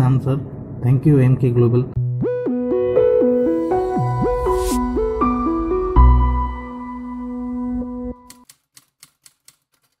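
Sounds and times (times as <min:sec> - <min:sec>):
held music chord: 0:02.0 - 0:08.3
keyboard key clicks: 0:08.3 - 0:10.0.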